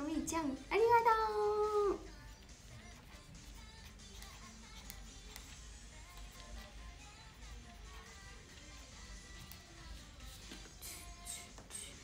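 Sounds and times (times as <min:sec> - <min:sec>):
woman speaking high-pitched: 0:00.0 - 0:02.1
faint background music: 0:00.0 - 0:12.0.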